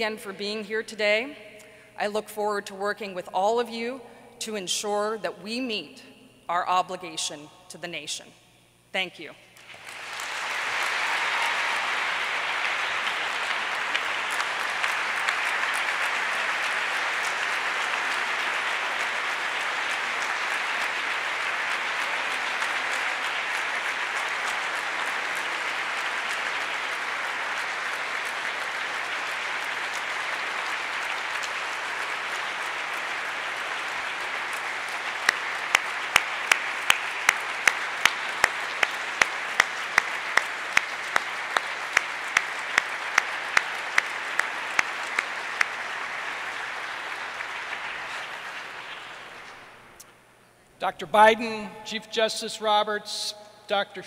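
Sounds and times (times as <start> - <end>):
large audience applauding: 9.6 - 50.0
sharp close claps: 9.6 - 50.1.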